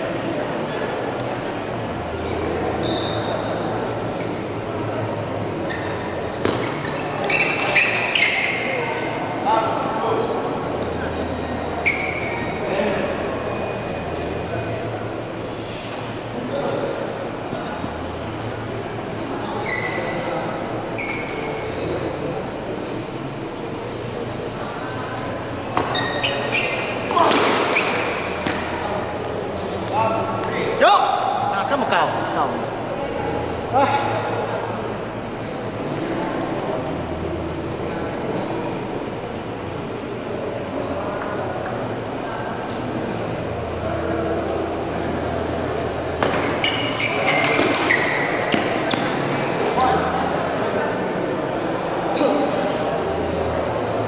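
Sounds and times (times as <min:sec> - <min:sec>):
people's voices: 0:00.0 - 0:54.0
table tennis ball bouncing: 0:28.5 - 0:31.3.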